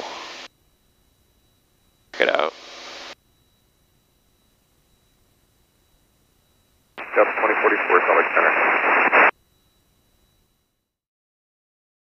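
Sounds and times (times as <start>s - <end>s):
radio speech: 2.2s - 2.6s, 7.0s - 9.3s.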